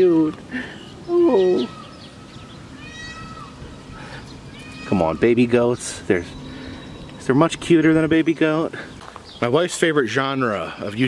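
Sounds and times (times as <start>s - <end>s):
baby goat bleating: 1.2s - 3.6s, 4.5s - 5.2s.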